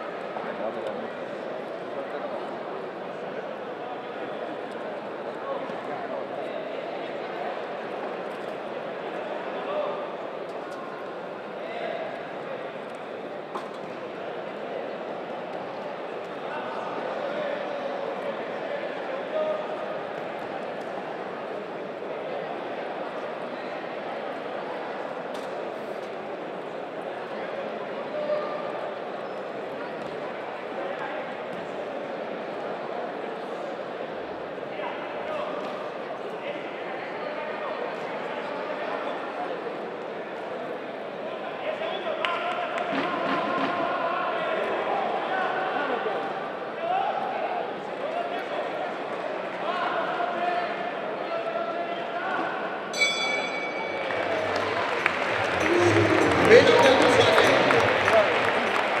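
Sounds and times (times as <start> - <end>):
bell ringing: 53.0 - 58.3
crowd shouting and cheering: 53.0 - 59.0.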